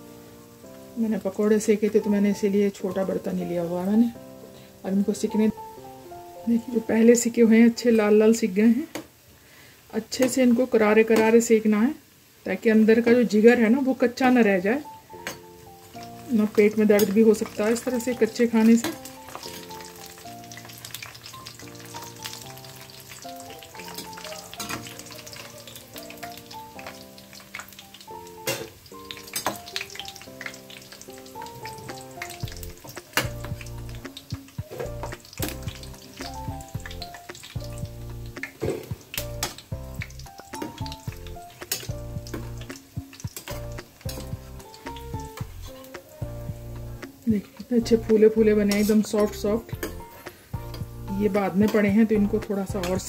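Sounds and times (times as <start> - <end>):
soft background music: 0.0 - 8.8, 12.5 - 53.0
food deep-frying in oil: 0.0 - 53.0.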